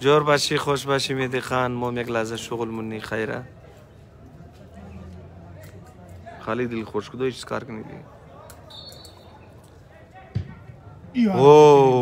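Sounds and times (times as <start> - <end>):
faint background noise: 0.0 - 12.0
football kick thump: 10.3 - 10.8.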